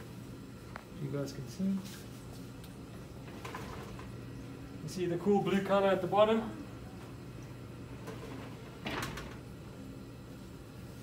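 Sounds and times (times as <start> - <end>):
exhaust fan humming: 0.0 - 11.0.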